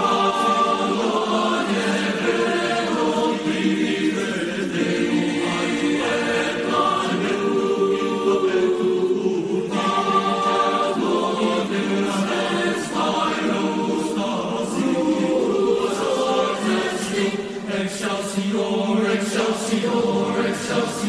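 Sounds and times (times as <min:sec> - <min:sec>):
boys' choir singing: 0:00.0 - 0:21.0.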